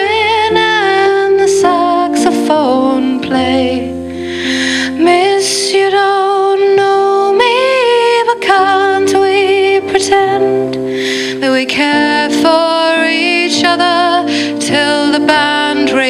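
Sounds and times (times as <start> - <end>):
instrumental accompaniment chords: 0.0 - 16.0
woman singing a ballad: 0.0 - 16.0.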